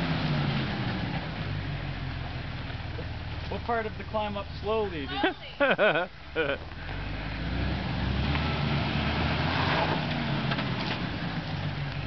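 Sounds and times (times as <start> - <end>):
engine pulling under load: 0.0 - 12.0.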